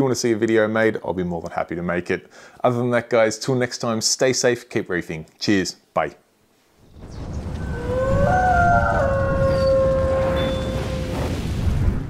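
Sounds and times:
wolf howl: 7.6s - 11.4s.

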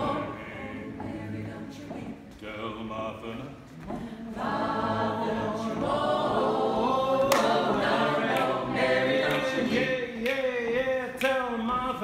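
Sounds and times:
a cappella group singing: 0.0s - 12.0s.

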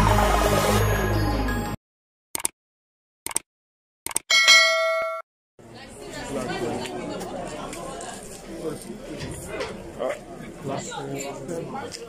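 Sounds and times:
bright bell-like chime: 4.3s - 5.2s
crowd of voices chattering: 5.6s - 12.0s.

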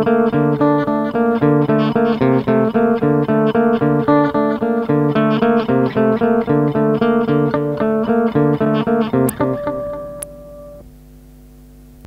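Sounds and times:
guitar notes ringing out: 0.0s - 10.9s.

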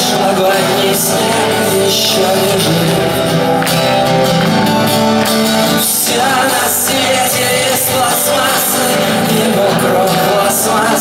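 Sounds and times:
man singing: 0.0s - 4.5s, 5.4s - 11.0s
strummed acoustic guitar: 0.0s - 11.0s.

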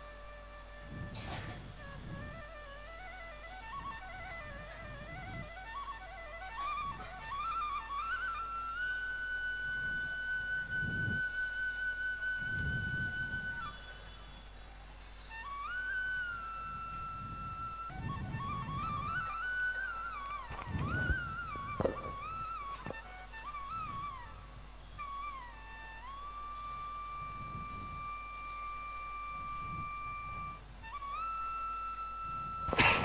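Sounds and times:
solo flute melody: 0.0s - 33.0s.

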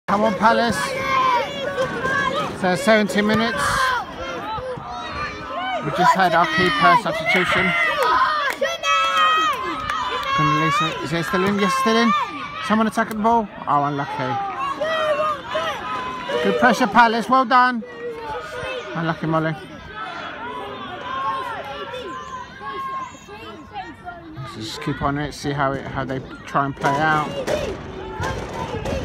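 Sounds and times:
people shouting and calling: 0.1s - 29.0s.

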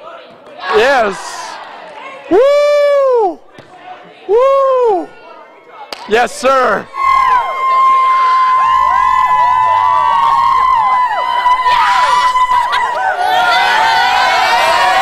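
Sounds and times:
girls whooping and cheering: 2.3s - 3.4s, 6.9s - 15.0s.

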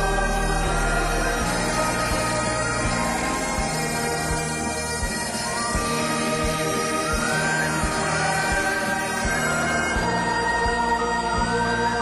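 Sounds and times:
crowd singing a hymn: 0.0s - 12.0s
sustained instrumental accompaniment: 0.0s - 12.0s.

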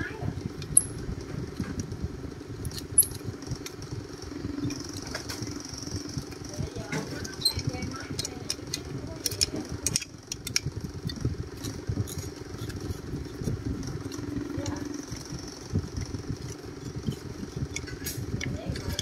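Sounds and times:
small engine running: 2.7s - 19.0s
sharp metallic clicks: 7.3s - 15.4s.

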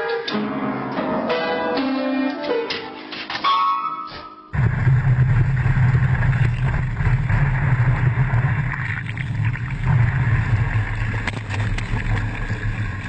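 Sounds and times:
rushing water: 4.8s - 13.0s.

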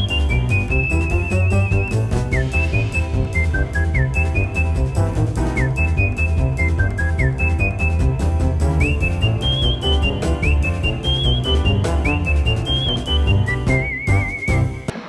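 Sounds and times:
beat and bass line: 0.0s - 14.9s
whistled melody: 0.0s - 14.9s.

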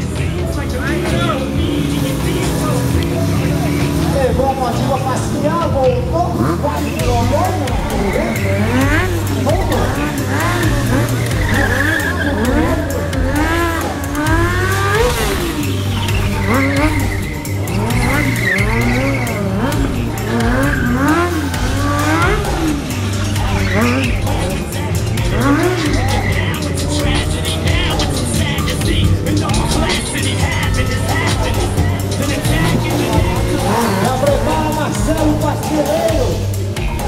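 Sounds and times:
motorcycle engine revving: 0.0s - 37.0s
tyre squeal: 7.0s - 37.0s.

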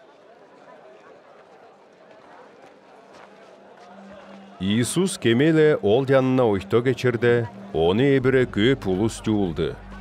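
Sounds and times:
faint crowd hubbub: 0.0s - 10.0s.

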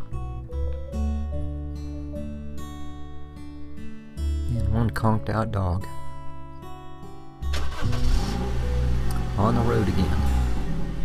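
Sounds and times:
acoustic guitar music: 0.0s - 11.0s
vehicle engine starting and running: 7.5s - 11.0s.

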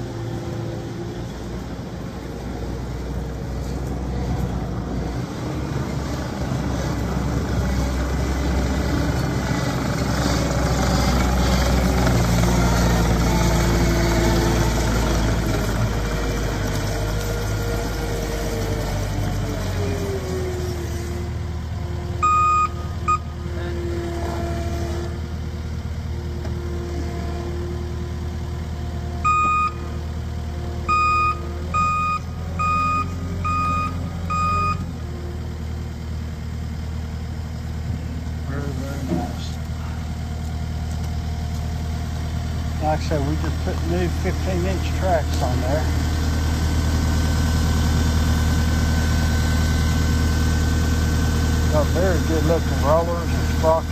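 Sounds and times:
diesel engine running: 0.0s - 53.9s
backup alarm beeps: 22.2s - 23.3s, 29.2s - 29.9s, 30.9s - 34.8s.

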